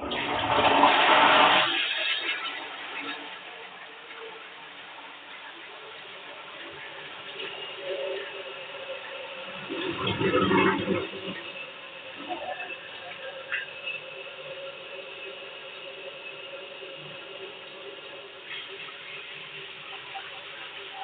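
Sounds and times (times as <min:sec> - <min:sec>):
water rushing: 0:00.0 - 0:21.0.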